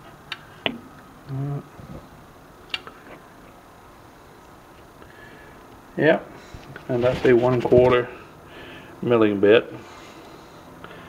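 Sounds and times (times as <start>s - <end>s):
man humming: 1.2s - 2.1s.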